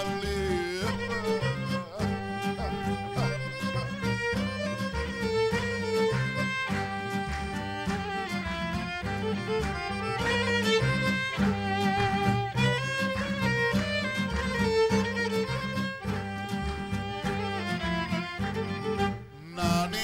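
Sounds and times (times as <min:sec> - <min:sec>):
accordion: 0:00.0 - 0:20.0
double bass: 0:00.0 - 0:20.0
guitar: 0:00.0 - 0:20.0
violin melody: 0:00.0 - 0:20.0.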